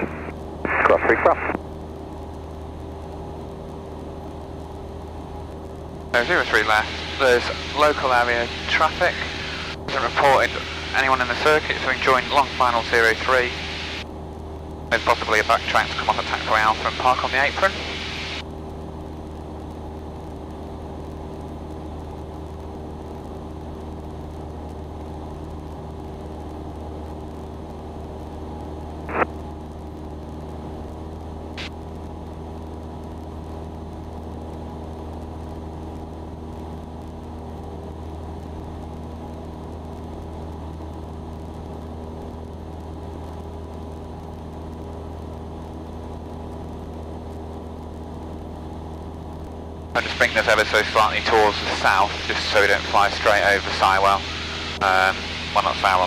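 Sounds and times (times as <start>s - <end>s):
airplane engine droning: 0.0s - 56.0s.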